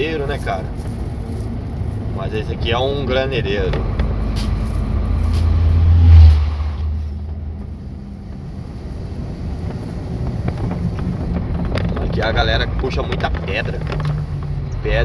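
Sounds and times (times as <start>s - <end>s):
cab engine and road noise: 0.0s - 15.0s
truck passing by: 0.0s - 15.0s.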